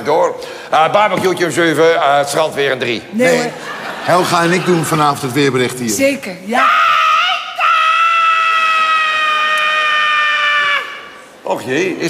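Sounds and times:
woman screaming: 6.5s - 11.2s.

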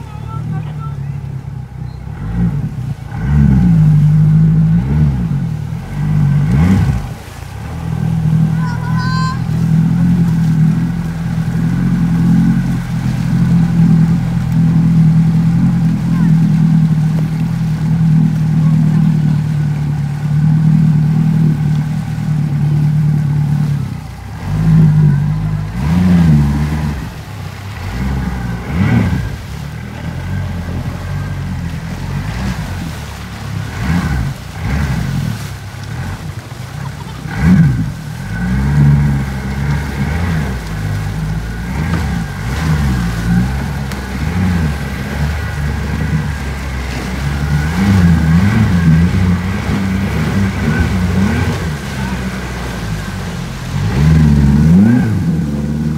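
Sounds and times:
outboard motor revving: 0.0s - 55.9s.

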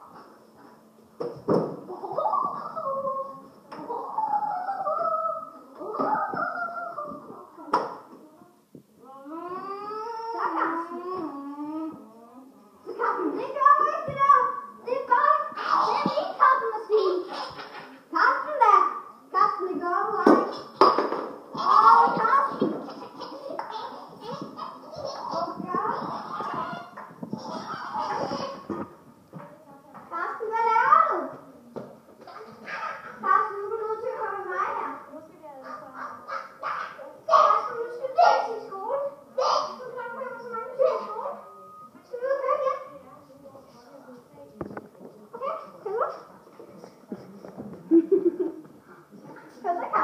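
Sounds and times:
high-pitched wordless cries: 1.9s - 7.5s, 9.0s - 14.4s
child howling: 3.9s - 7.2s.

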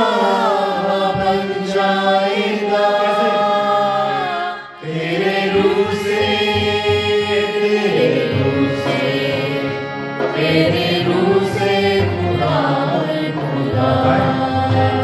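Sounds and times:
harmonium: 0.0s - 15.0s
man singing devotional song: 0.0s - 15.0s.

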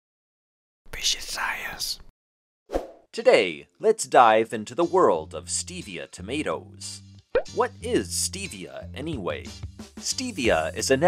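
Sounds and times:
person whispering: 0.9s - 2.1s.

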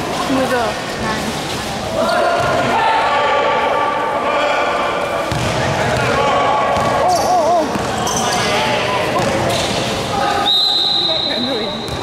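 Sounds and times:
basketball bouncing on hard court: 5.3s - 6.2s, 6.8s - 8.0s.

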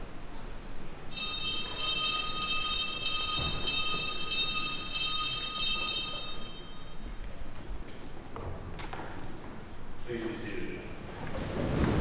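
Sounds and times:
electric school bell ringing: 1.1s - 7.1s.

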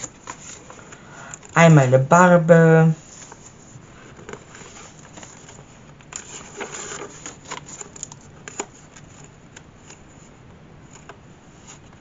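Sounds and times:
paper pages rustling: 0.0s - 1.6s, 3.0s - 12.0s.

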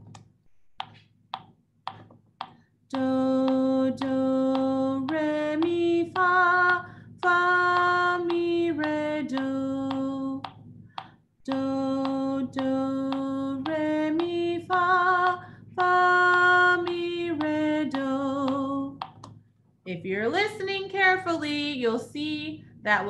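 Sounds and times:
woman singing solfege melody: 2.9s - 10.5s, 11.4s - 19.0s, 19.9s - 23.0s.

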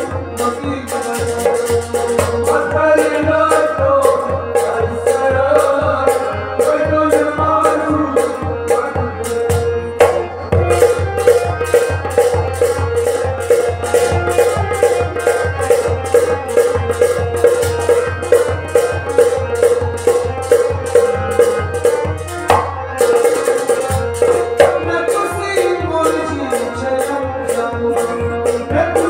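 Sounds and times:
goblet drum beating: 0.0s - 29.0s
harmonium sustained notes: 0.0s - 29.0s.

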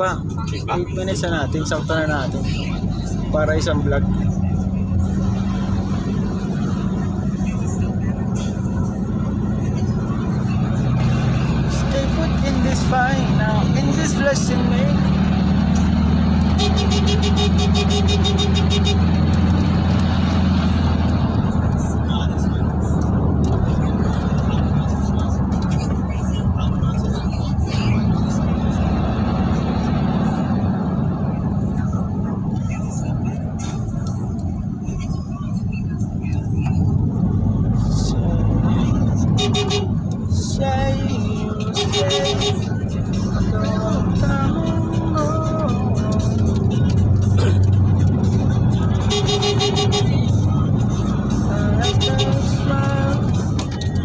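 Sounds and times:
car engine and road drone: 0.0s - 54.0s.

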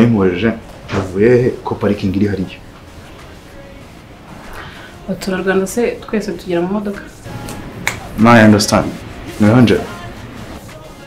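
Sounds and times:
man speaking: 0.0s - 2.6s, 8.2s - 10.0s.

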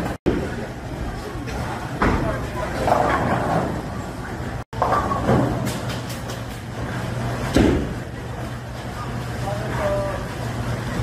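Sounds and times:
bowling balls rolling down lanes: 1.6s - 9.4s.

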